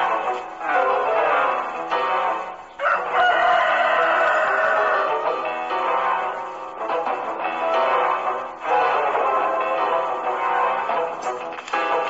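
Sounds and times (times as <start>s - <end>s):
background music: 0.0s - 12.0s
rooster crowing: 2.8s - 5.3s.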